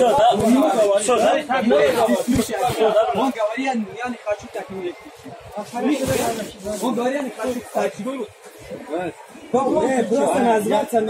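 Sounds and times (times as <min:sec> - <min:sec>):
men talking: 0:00.0 - 0:11.0
clothing rustling on microphone: 0:05.0 - 0:09.2.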